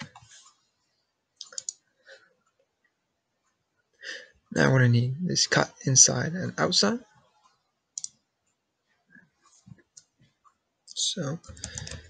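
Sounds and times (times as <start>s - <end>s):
keyboard and mouse clicks: 1.4s - 1.8s, 8.0s - 8.2s, 11.3s - 12.0s.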